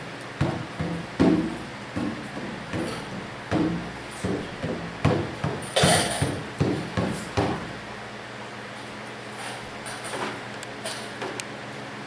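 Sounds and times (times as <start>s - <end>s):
frame drum beating: 0.4s - 7.7s.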